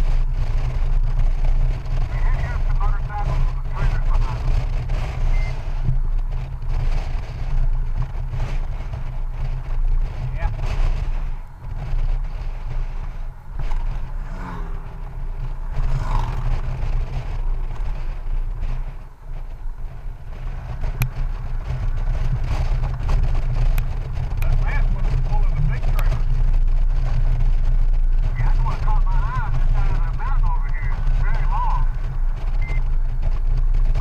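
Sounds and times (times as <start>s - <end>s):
motorcycle engine drone: 0.0s - 34.0s
wind buffeting microphone: 0.0s - 34.0s.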